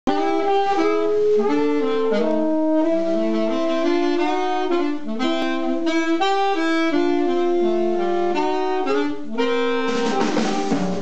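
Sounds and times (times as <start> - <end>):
saxophones playing jazz melody: 0.1 - 11.0.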